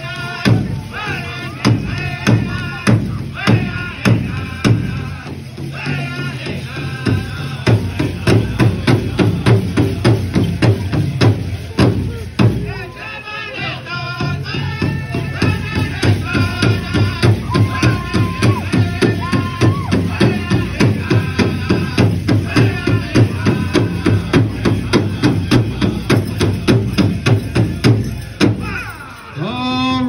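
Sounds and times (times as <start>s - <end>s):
large hand drum beat: 0.0s - 12.8s, 14.2s - 29.0s
group singing: 0.0s - 30.0s.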